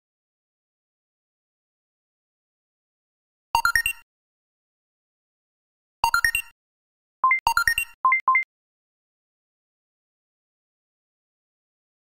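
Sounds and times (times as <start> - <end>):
electronic alert beeps: 7.2 - 8.5.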